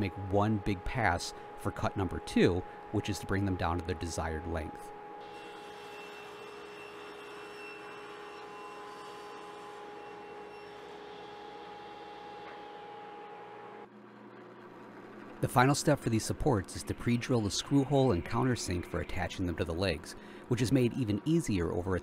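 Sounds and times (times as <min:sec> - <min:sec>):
table saw whining: 0:00.0 - 0:13.8.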